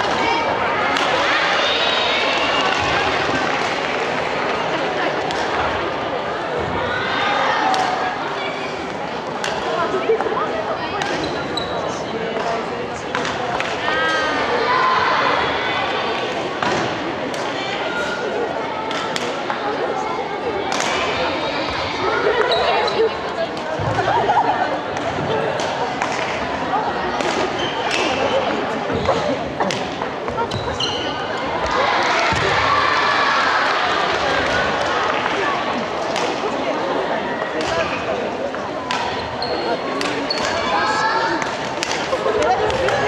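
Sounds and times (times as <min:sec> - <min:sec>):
background chatter: 0:00.0 - 0:43.0
people talking in echoing hall: 0:00.0 - 0:43.0
rackets hitting shuttlecocks: 0:41.4 - 0:43.0.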